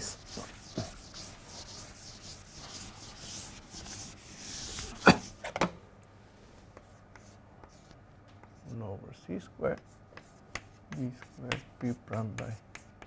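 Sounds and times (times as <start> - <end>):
chalk tapping on board: 0.0 - 5.4, 6.7 - 8.6, 9.6 - 13.0
duster rubbing on chalkboard: 0.0 - 5.5.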